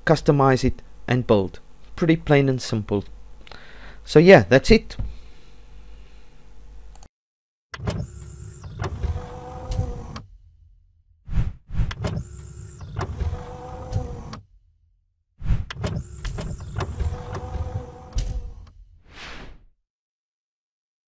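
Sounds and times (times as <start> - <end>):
mechanical sliding and whirring: 7.8 - 10.4, 11.3 - 14.6, 15.4 - 19.6.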